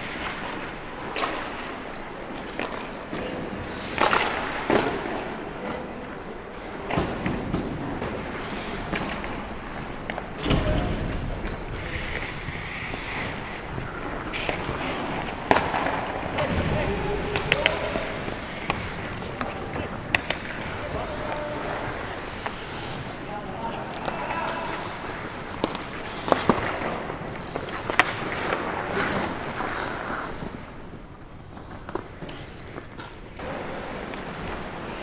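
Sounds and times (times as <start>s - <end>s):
sticks and puck clacking: 0.0s - 5.9s, 6.5s - 35.0s
skate blades scraping ice: 8.1s - 10.2s, 11.0s - 35.0s.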